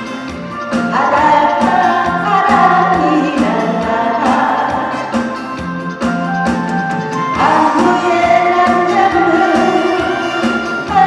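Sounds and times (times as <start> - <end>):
amplified accompaniment with bass line: 0.0 - 11.0
woman singing into microphone: 0.8 - 5.3, 7.3 - 11.0.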